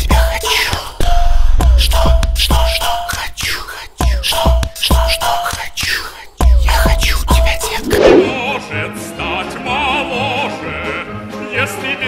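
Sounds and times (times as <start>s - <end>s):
breathy whispered vocal: 3.0s - 4.2s, 5.2s - 6.5s.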